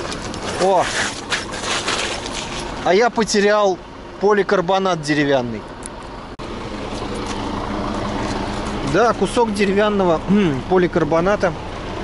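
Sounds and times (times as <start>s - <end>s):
bicycle rolling on rough road: 0.0s - 3.5s, 6.5s - 10.1s.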